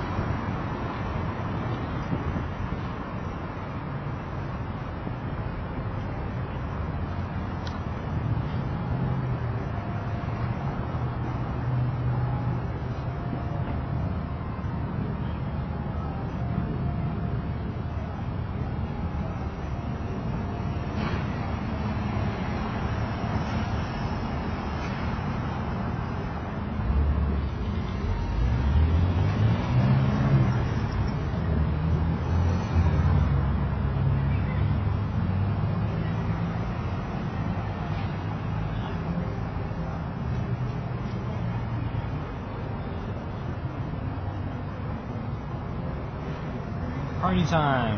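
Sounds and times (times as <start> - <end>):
street traffic rumbling: 0.0 - 47.9
vehicle passing: 21.0 - 40.1.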